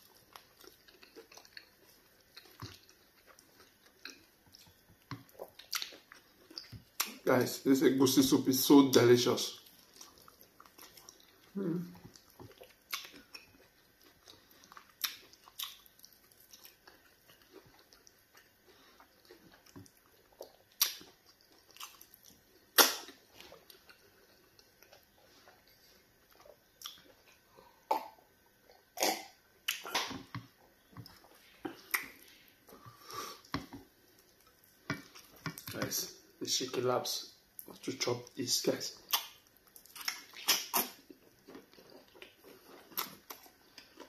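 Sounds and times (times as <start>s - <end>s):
wet chewing and swallowing: 0.0s - 7.3s, 9.4s - 36.4s, 37.4s - 44.0s.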